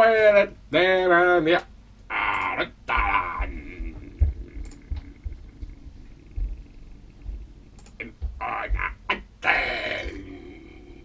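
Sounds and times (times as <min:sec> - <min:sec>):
person's wordless vocal sound: 0:02.1 - 0:11.0.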